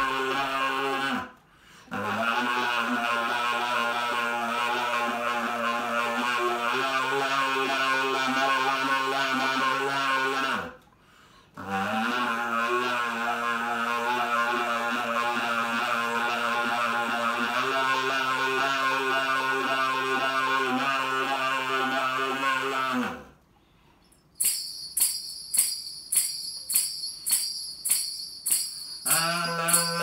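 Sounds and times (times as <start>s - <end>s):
saxophone with kazoo held tone: 0.0s - 10.8s, 11.4s - 23.4s, 24.8s - 30.0s
foot tambourine jingling: 24.0s - 30.0s.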